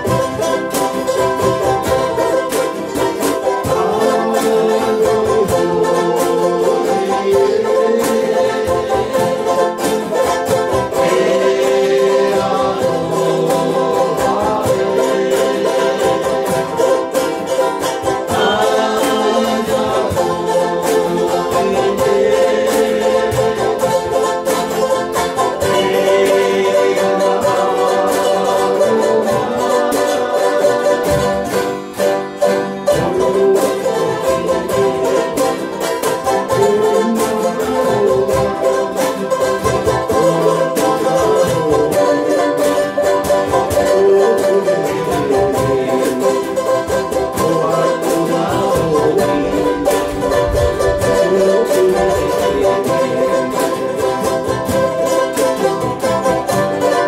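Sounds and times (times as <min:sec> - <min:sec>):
ukuleles and guitars strumming: 0:00.0 - 0:57.0.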